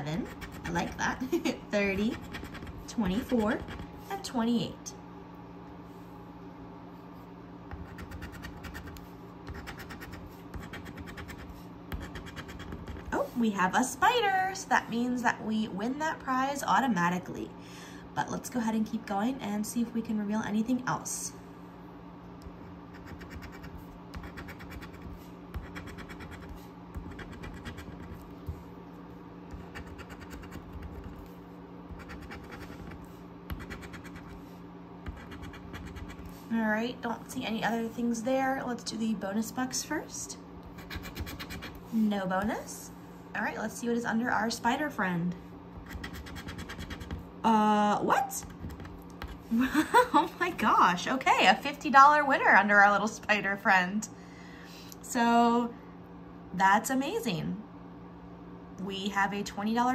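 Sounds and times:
coin scratching lottery ticket: 0.2 - 1.0, 1.9 - 3.8, 7.8 - 13.1, 22.9 - 28.3, 29.5 - 31.3, 31.9 - 34.4, 35.1 - 36.3, 40.8 - 41.8, 45.8 - 47.2.

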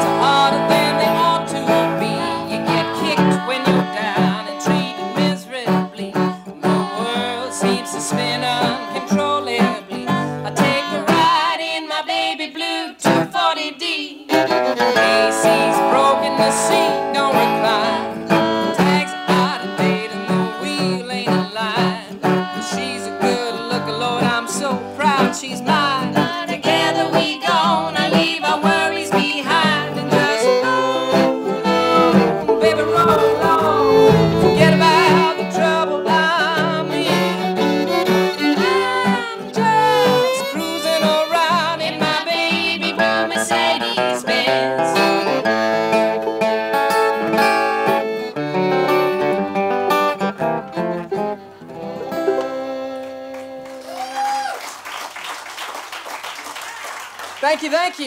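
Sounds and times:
strummed acoustic guitar: 0.0 - 11.5, 13.0 - 13.4, 14.3 - 53.6
banjo: 0.0 - 11.6, 14.3 - 53.5
fiddle melody: 0.0 - 11.6, 14.3 - 54.2.

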